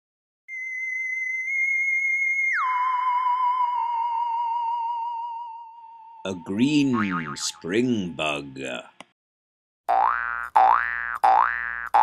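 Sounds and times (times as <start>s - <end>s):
cartoon boing sound effect: 7.0s - 7.5s, 9.9s - 12.0s.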